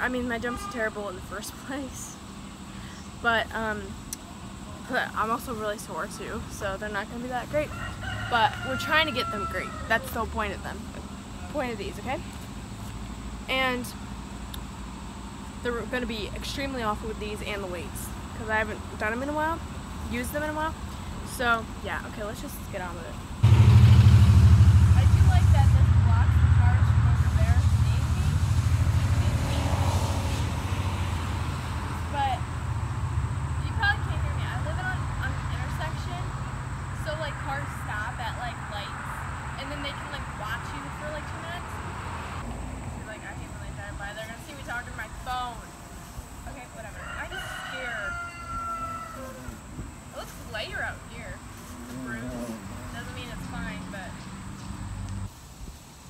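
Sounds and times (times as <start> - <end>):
low engine rumble: 0.0 - 48.1, 49.0 - 55.3
outdoor background noise: 0.0 - 56.0.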